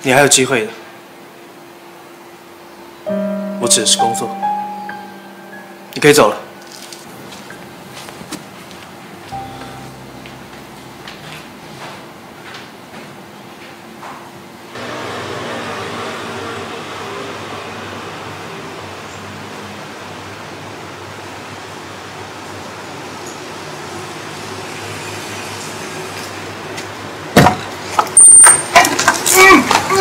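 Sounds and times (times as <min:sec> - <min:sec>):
low drone with held tones: 0:02.8 - 0:07.3, 0:09.3 - 0:12.4.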